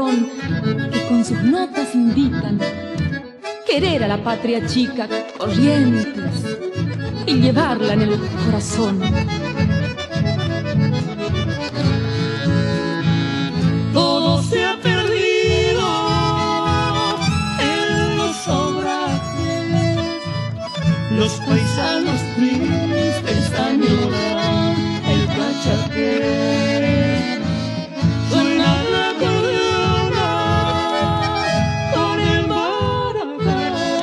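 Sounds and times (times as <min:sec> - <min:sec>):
accordion melody and chords: 0:00.0 - 0:34.0.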